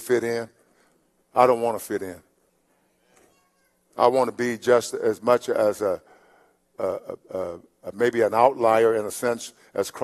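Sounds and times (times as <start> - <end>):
man speaking: 0.0 - 0.6, 1.3 - 2.3, 4.0 - 6.1, 6.8 - 10.0.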